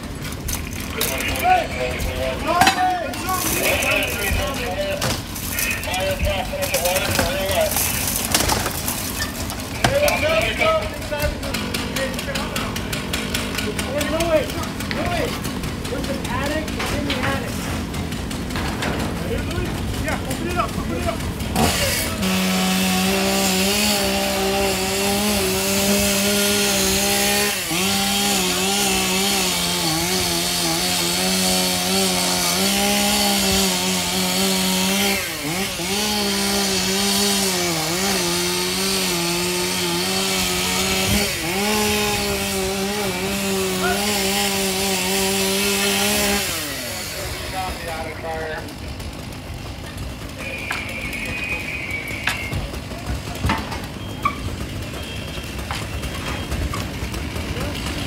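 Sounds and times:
chainsaw cutting through roof: 0:00.0 - 0:58.0.

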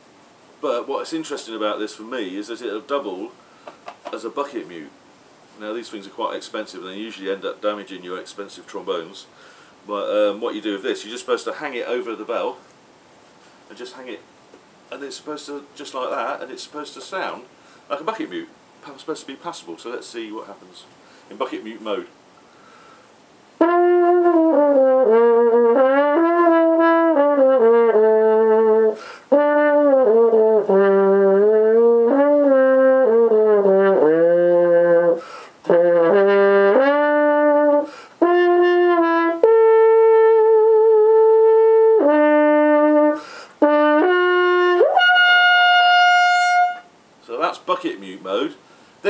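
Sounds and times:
muted trombone melody: 0:23.6 - 0:46.9.

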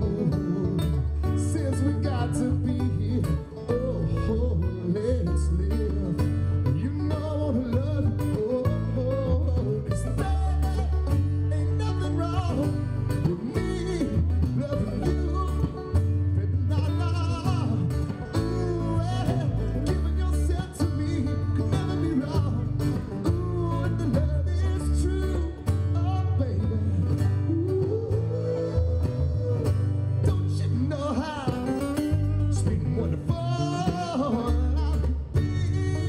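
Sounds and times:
banjo: 0:00.0 - 0:36.0
heavy bass line: 0:00.0 - 0:36.0
man singing: 0:00.0 - 0:36.0
mandolin: 0:00.0 - 0:36.0
strummed acoustic guitar: 0:00.0 - 0:36.0.

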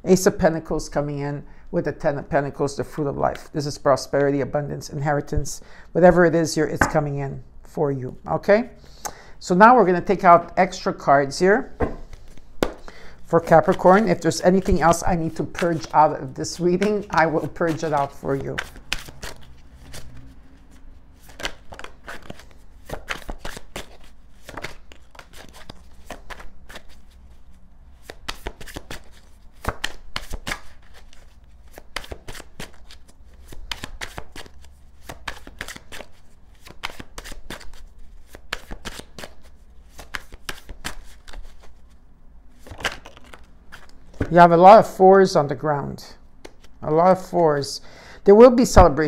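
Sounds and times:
cards shuffled by hand: 0:11.8 - 0:42.0, 0:42.6 - 0:44.4, 0:46.4 - 0:46.8.

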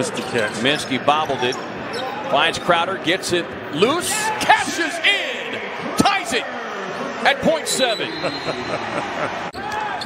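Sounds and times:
quiet court sound: 0:00.0 - 0:10.0.

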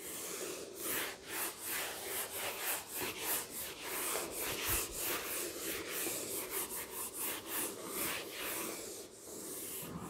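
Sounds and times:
eraser rubbing on whiteboard: 0:00.0 - 0:10.0.

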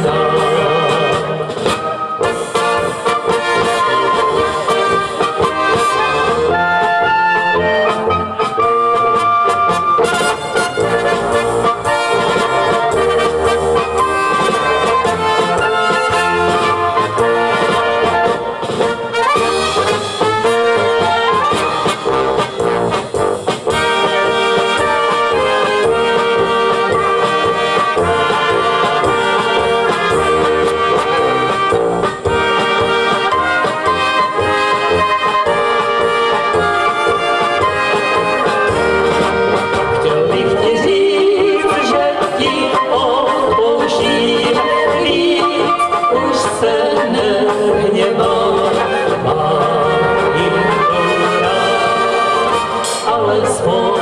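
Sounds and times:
brass band playing dance tune: 0:00.0 - 0:54.0
drum kit: 0:00.0 - 0:54.0.

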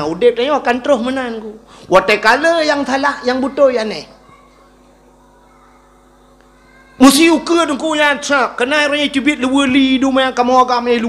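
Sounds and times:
sound system hum: 0:00.0 - 0:11.0.

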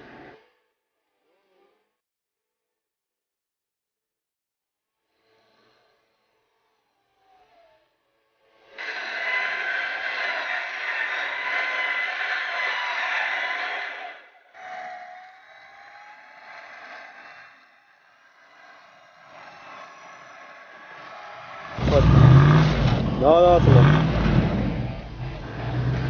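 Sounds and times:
engine revving: 0:19.3 - 0:26.0
car engine driving through mud: 0:21.4 - 0:26.0.

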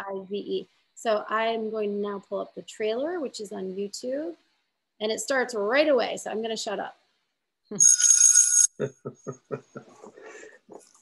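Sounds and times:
bell-like ringing chime: 0:07.8 - 0:08.8.

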